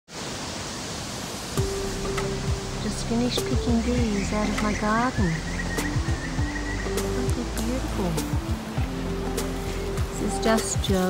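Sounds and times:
steady hiss: 0:00.1 - 0:11.0.

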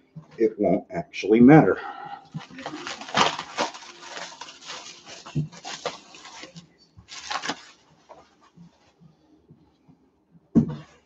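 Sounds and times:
plastic wrap crinkling: 0:02.2 - 0:09.0.

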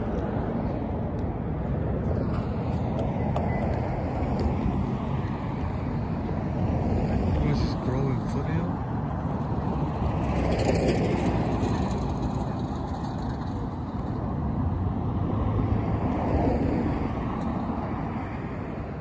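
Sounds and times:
passing cars rumble: 0:00.0 - 0:19.0.

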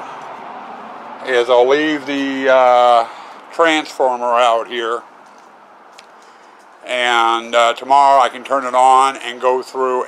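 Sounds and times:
man talking: 0:01.2 - 0:05.0, 0:06.8 - 0:10.0.

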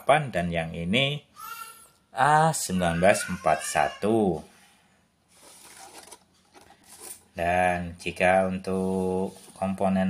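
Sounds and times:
faint handling rustles: 0:05.3 - 0:07.4, 0:08.7 - 0:09.9.

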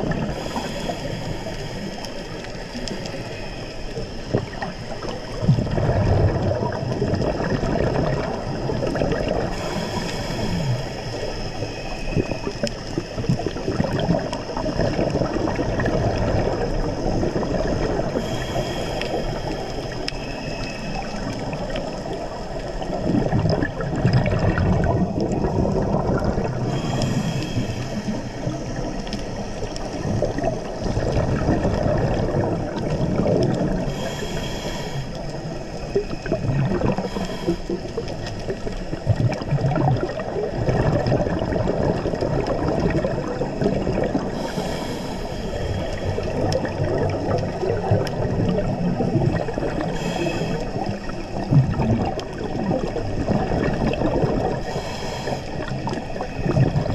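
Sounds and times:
exhaled air bubbling: 0:00.0 - 0:56.9
underwater noise: 0:00.0 - 0:56.9.

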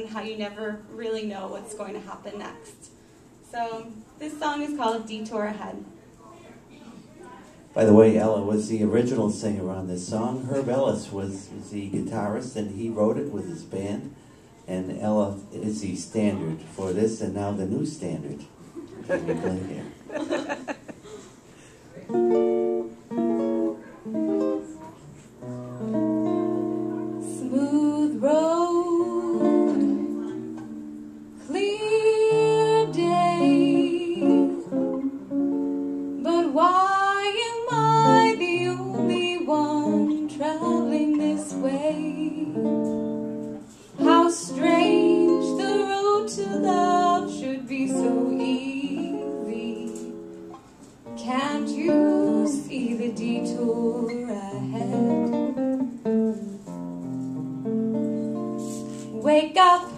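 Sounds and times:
jazz guitar chords: 0:22.0 - 0:59.9
woman singing: 0:27.2 - 0:30.2, 0:31.4 - 0:34.8, 0:36.2 - 0:42.8, 0:44.0 - 0:50.3, 0:51.1 - 0:55.4, 0:59.2 - 0:59.9.

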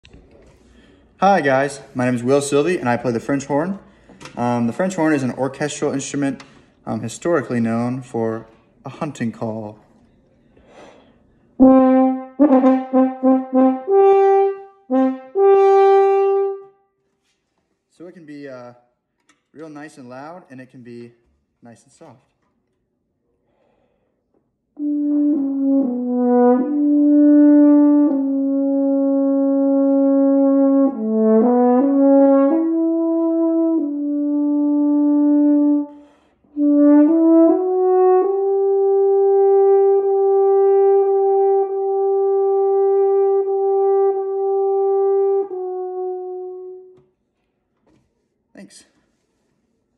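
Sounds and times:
french horn playing: 0:11.6 - 0:16.8, 0:24.8 - 0:47.0.

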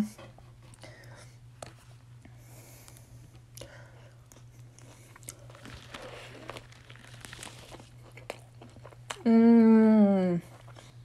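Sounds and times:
biting and chewing food: 0:02.9 - 0:09.3.

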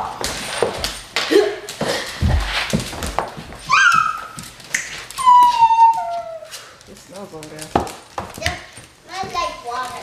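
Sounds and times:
bumps and scuffles on floor: 0:00.0 - 0:10.0
dog whining: 0:03.6 - 0:04.4, 0:05.1 - 0:06.8.

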